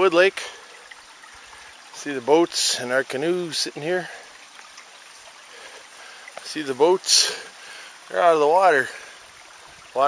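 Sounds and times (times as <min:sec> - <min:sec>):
water trickling: 0:00.0 - 0:10.0.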